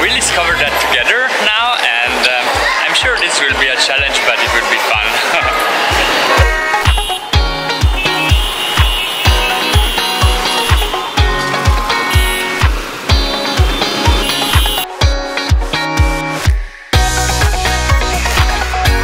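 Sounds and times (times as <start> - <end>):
upbeat music with kick drum: 2.1 - 19.0.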